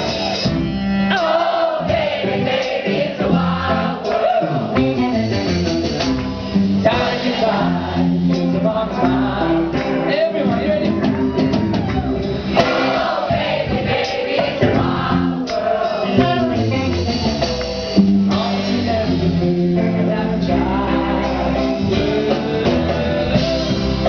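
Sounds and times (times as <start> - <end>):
strummed guitar: 0.0 - 24.0
man singing into a microphone: 6.8 - 9.5, 18.3 - 21.0
man singing: 6.8 - 11.1, 15.9 - 16.9, 18.3 - 24.0.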